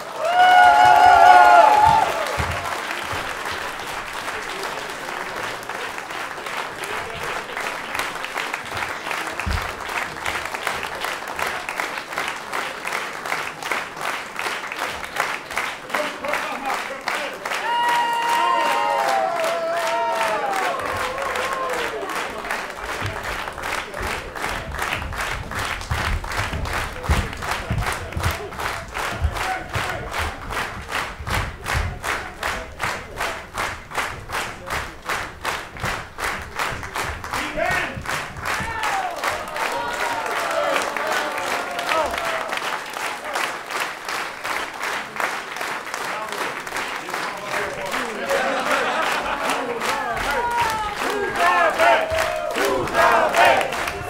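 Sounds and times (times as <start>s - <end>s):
audience clapping in unison: 0.0s - 54.0s
low thumps: 22.9s - 39.6s.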